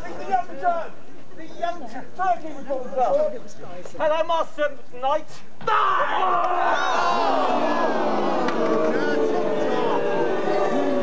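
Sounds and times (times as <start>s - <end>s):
many voices shouting together: 5.7s - 11.0s.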